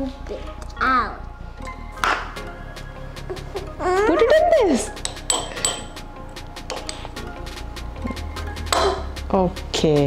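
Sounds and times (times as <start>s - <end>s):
background music with steady beat: 0.0s - 10.0s
spoon clinking against glass: 5.0s - 6.0s.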